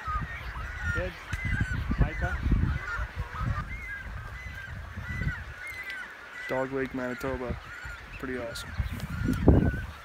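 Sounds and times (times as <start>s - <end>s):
short high bird calls: 0.0s - 10.0s.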